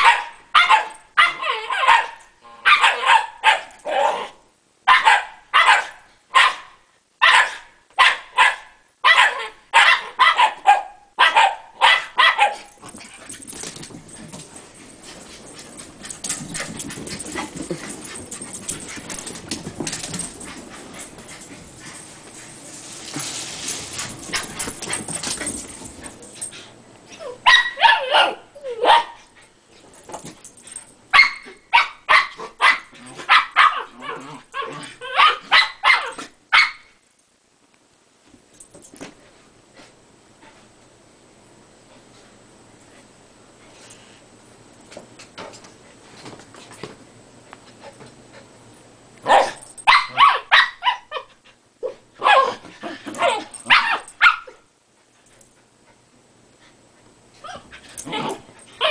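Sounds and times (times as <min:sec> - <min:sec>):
dogs barking: 0:04.9 - 0:12.7.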